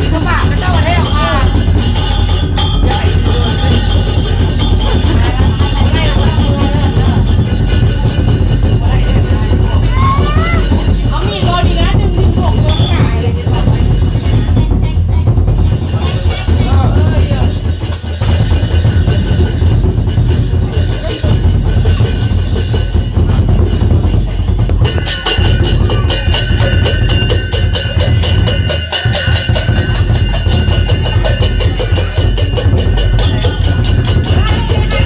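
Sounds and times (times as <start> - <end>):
large drum beating: 0.0 - 35.0
ringing cymbal clashes: 0.0 - 35.0.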